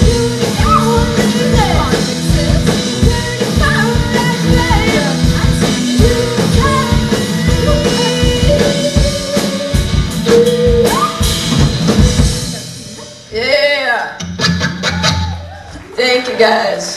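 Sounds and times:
woman singing: 0.0s - 11.4s
live rock band playing: 0.0s - 15.8s.

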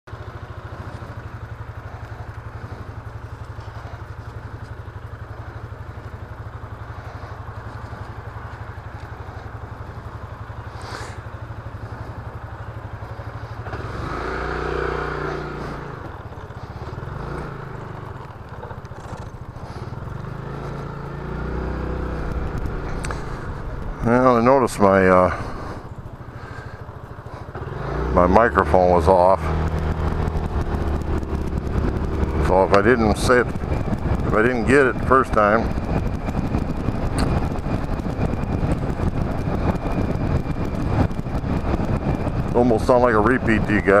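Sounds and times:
scooter engine idling and revving: 0.0s - 44.0s.

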